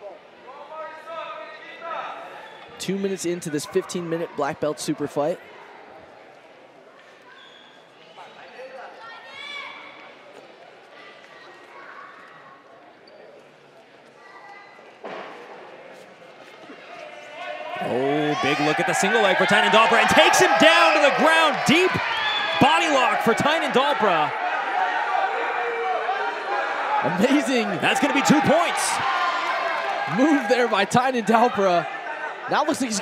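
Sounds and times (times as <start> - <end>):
commentator's excited voice: 2.8 - 5.4, 17.8 - 24.4, 27.0 - 29.0, 30.1 - 31.9, 32.5 - 33.0.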